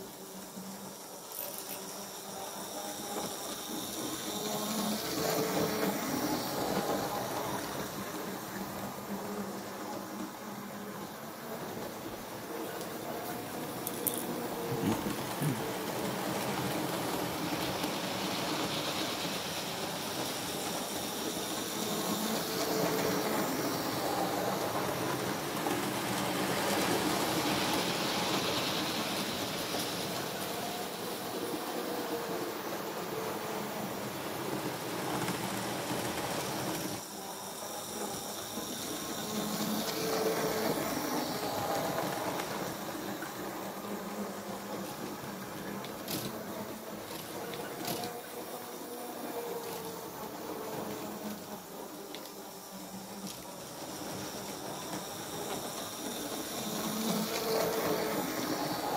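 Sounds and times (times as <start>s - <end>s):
model train wheels rattling: 1.2s - 8.4s, 12.6s - 31.0s, 37.8s - 48.9s.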